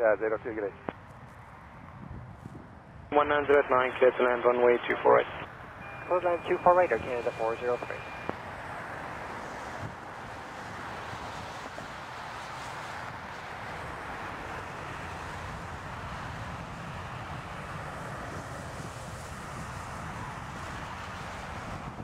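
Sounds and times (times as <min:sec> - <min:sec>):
jet engines at takeoff: 0:00.0 - 0:22.0
wind noise on microphone: 0:00.8 - 0:03.1, 0:09.6 - 0:13.8, 0:15.1 - 0:22.0.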